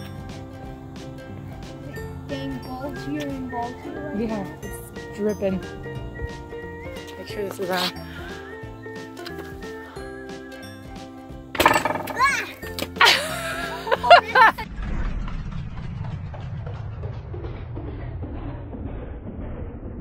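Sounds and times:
background music: 0:00.0 - 0:14.7
low steady rumble: 0:14.4 - 0:20.0.

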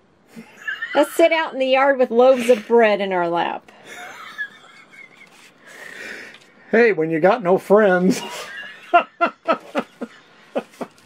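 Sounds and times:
breathy wheezy laughter: 0:03.8 - 0:06.2.

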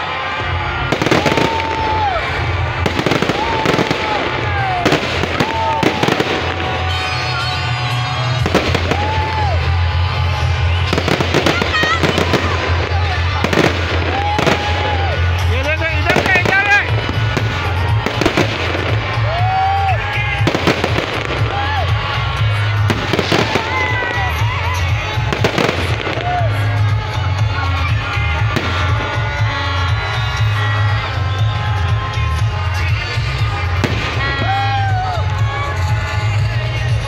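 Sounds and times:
crowd shouting: 0:00.0 - 0:37.0
fireworks bursting and crackling: 0:00.0 - 0:37.0
loud music with heavy bass: 0:00.6 - 0:37.0.

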